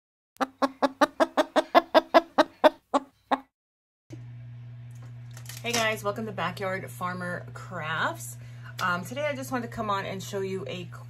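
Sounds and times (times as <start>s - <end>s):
hen clucking: 0.4s - 3.5s.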